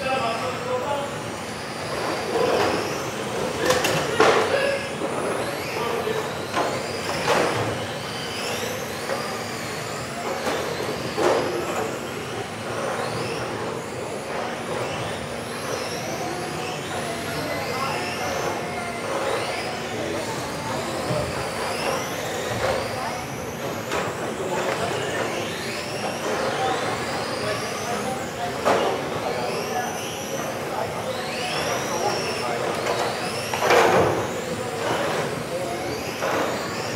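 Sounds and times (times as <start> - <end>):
small electric motors whining: 0.0 - 36.9.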